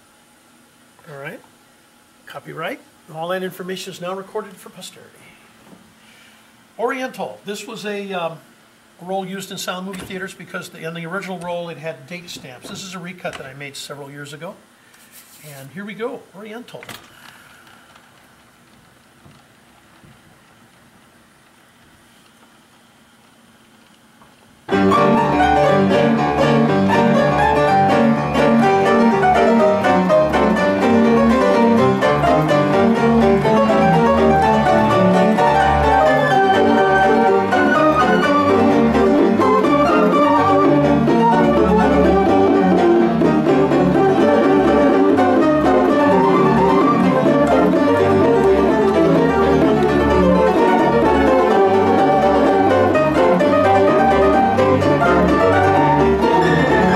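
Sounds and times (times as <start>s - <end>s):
player piano with pipe voices: 24.7s - 56.9s.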